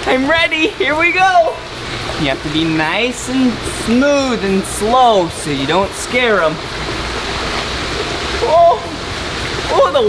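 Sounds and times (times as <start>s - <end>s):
waterfall rushing: 0.0s - 10.0s
person exclaiming: 8.4s - 9.0s.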